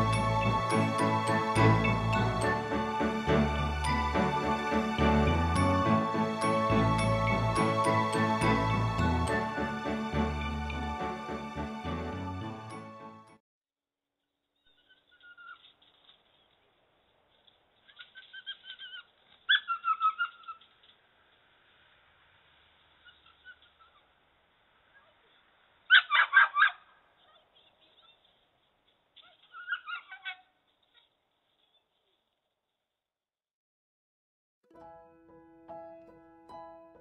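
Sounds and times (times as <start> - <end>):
dog barking: 25.9 - 27.4
dog whining and yelping: 25.9 - 28.2, 29.2 - 30.4.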